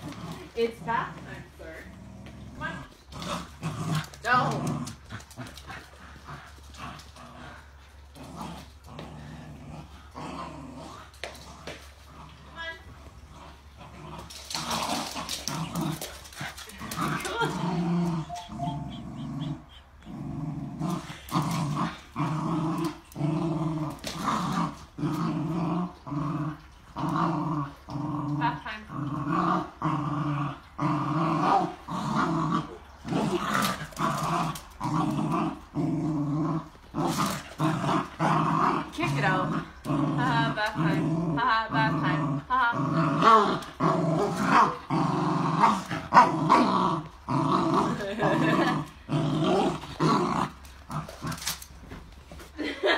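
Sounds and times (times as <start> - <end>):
small dog growling: 0.0 - 52.7.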